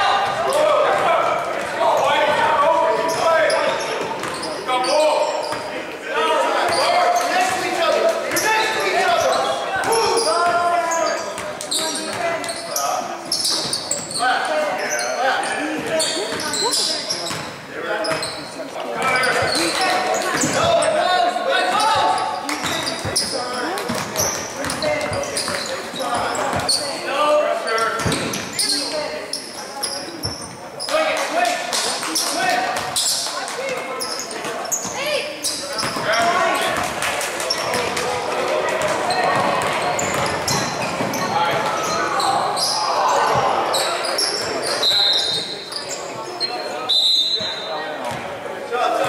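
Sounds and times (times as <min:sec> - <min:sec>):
players and spectators calling out: 0:00.0 - 0:49.0.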